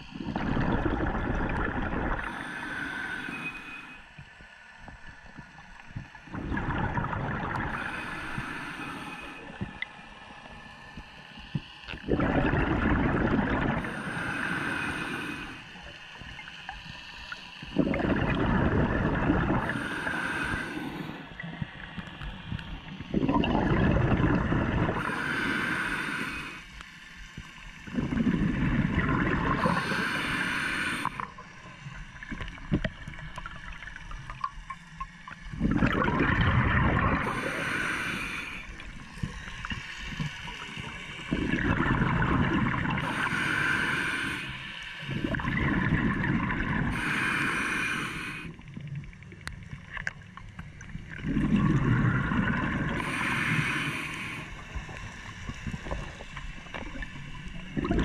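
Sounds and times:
exhaled bubbles rushing: 0:00.0 - 0:02.4, 0:06.2 - 0:08.2, 0:11.9 - 0:14.2, 0:17.6 - 0:20.1, 0:22.8 - 0:25.2, 0:27.8 - 0:30.1, 0:35.4 - 0:37.7, 0:38.7 - 0:43.2, 0:45.1 - 0:47.0, 0:50.7 - 0:53.4, 0:54.6 - 0:58.0
diver breathing through regulator: 0:01.5 - 0:04.1, 0:07.5 - 0:10.1, 0:12.1 - 0:16.1, 0:17.7 - 0:21.4, 0:23.2 - 0:27.1, 0:27.9 - 0:31.5, 0:35.6 - 0:48.6, 0:51.3 - 0:56.8.

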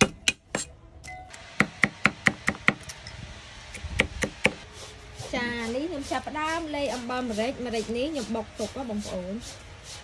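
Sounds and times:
cleaver chopping on wooden board: 0:00.0 - 0:00.7.

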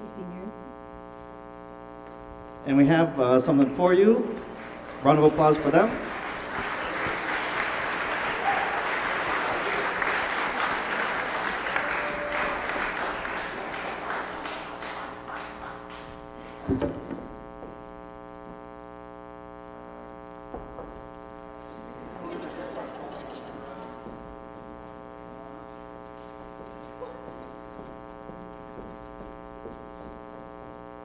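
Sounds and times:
steady electrical hum: 0:00.0 - 0:31.0
audience applauding: 0:03.5 - 0:16.8, 0:21.6 - 0:30.1
single thump: 0:16.6 - 0:17.8.

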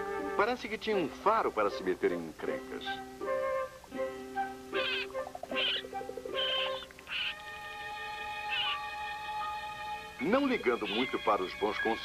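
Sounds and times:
raccoon cub squealing: 0:04.7 - 0:12.0.

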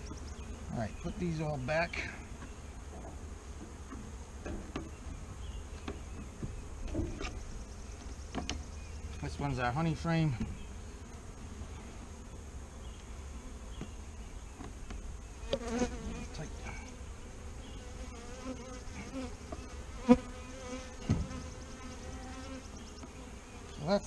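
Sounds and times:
honey bees buzzing: 0:00.0 - 0:24.0.

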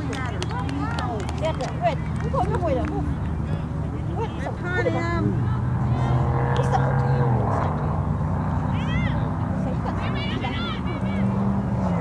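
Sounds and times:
distant voices: 0:00.0 - 0:12.0
low engine hum: 0:00.0 - 0:12.0.

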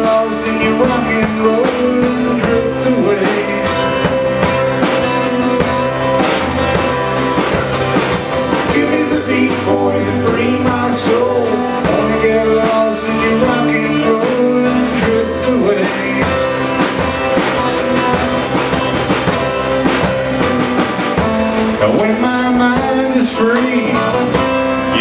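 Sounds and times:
acoustic-electric guitar: 0:00.0 - 0:25.0
drum kit playing a steady beat: 0:00.0 - 0:25.0.

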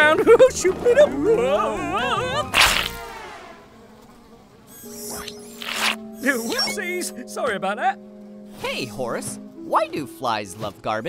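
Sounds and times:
cartoon fly buzzing: 0:02.1 - 0:07.0.

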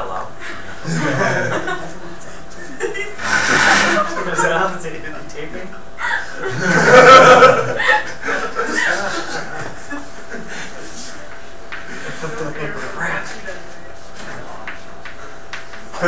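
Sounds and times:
people talking: 0:00.0 - 0:16.0
people laughing: 0:00.4 - 0:05.2, 0:06.0 - 0:13.7.

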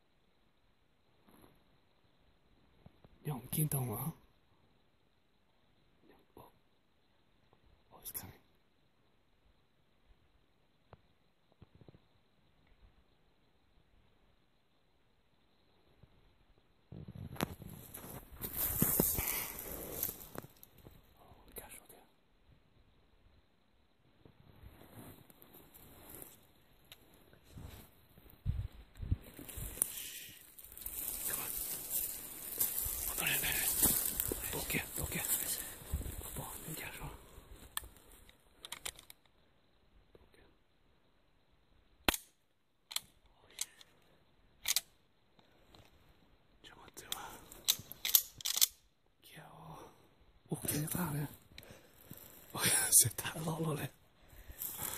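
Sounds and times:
footsteps crunching through dry leaves: 0:30.6 - 0:35.7
gun action clicking: 0:38.6 - 0:39.2, 0:44.6 - 0:44.9, 0:47.6 - 0:48.8.

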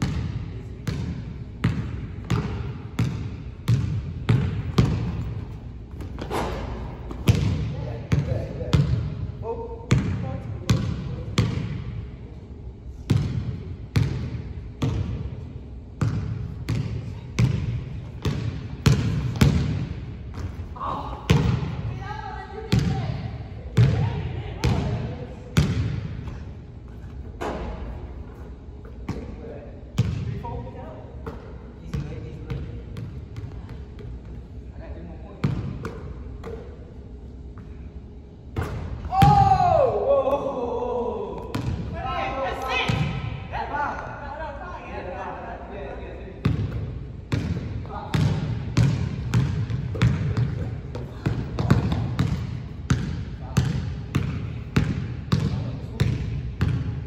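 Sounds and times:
basketball bouncing on wooden floor: 0:00.0 - 0:06.4, 0:07.1 - 0:09.0, 0:16.0 - 0:20.6, 0:46.4 - 0:56.9.

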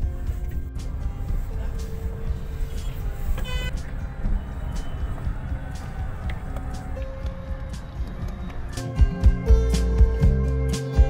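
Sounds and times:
car rumbling inside cabin: 0:00.0 - 0:10.5
short vehicle horn toot: 0:03.4 - 0:03.7.

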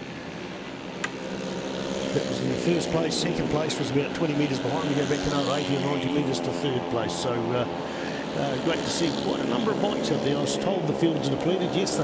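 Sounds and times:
mini motorbike engines racing: 0:00.0 - 0:12.0.

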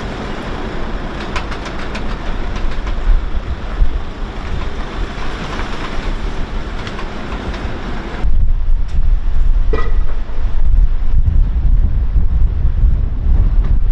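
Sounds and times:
outdoor noise: 0:00.0 - 0:13.9
wind buffeting microphone: 0:00.0 - 0:13.9
small clicks and ticks: 0:01.2 - 0:03.1.

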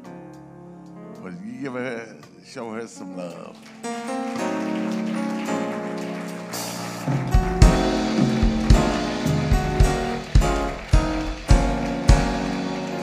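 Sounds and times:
church band music: 0:00.0 - 0:13.0
congregation applauding: 0:01.7 - 0:13.0
drum beat: 0:06.6 - 0:13.0.

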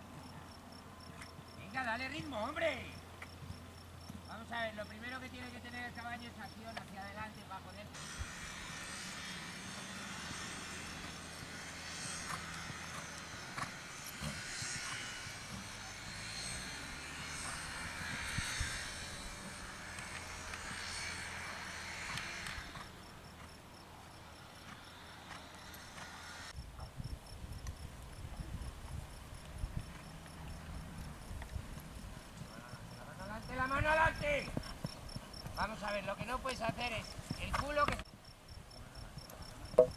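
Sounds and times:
crickets chirping: 0:00.0 - 0:39.9
rustling hiss: 0:08.0 - 0:39.9
horse hoofbeats on sand: 0:09.6 - 0:23.6, 0:29.4 - 0:38.0.

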